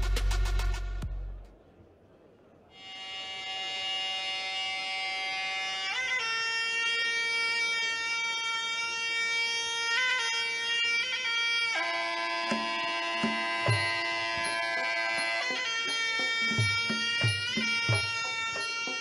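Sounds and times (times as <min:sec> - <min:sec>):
drum strikes: 0:00.0 - 0:01.2, 0:12.5 - 0:19.0
reed oboe long nasal notes: 0:02.7 - 0:19.0.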